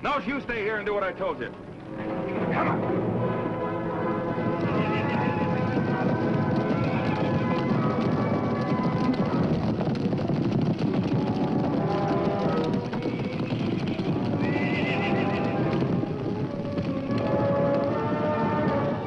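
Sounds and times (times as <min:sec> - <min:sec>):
horses galloping hoofbeats: 0:00.0 - 0:19.0
dramatic orchestral music: 0:00.9 - 0:05.7
horses whinnying: 0:04.5 - 0:09.4, 0:11.3 - 0:19.0.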